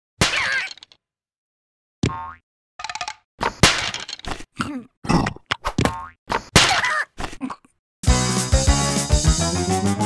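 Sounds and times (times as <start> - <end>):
squeaky character vocalizations: 0.3 - 0.8.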